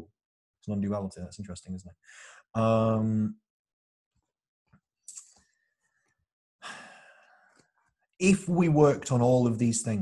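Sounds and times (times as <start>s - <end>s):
man breathing: 2.0s - 2.5s, 5.6s - 7.8s.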